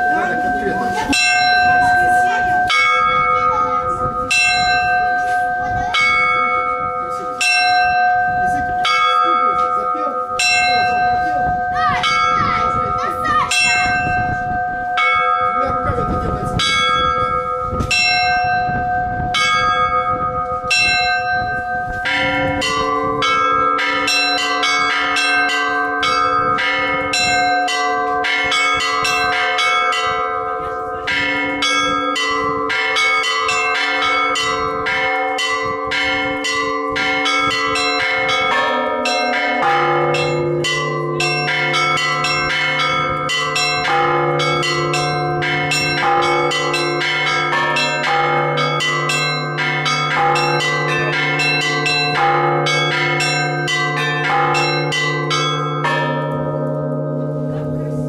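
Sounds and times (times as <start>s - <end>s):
small bells ringing rapidly: 0.0s - 57.2s
deep bell ringing: 0.0s - 58.0s
lower bell ringing: 0.0s - 58.0s.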